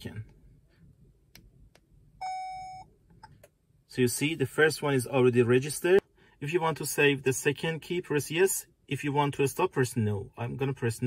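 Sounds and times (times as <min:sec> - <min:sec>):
steady electronic beep: 0:02.2 - 0:02.9.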